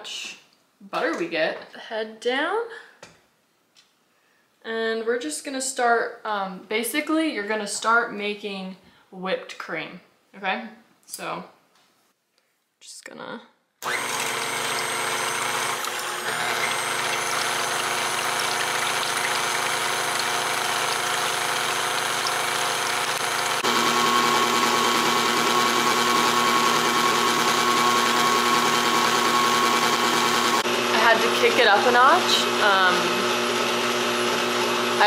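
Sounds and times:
stand mixer motor whining: 13.8s - 35.0s
whisk beating cream in bowl: 14.0s - 35.0s.

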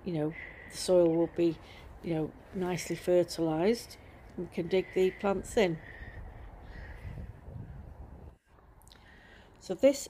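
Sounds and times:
crow cawing faintly: 4.8s - 8.0s
low rumble on microphone: 6.0s - 8.4s.

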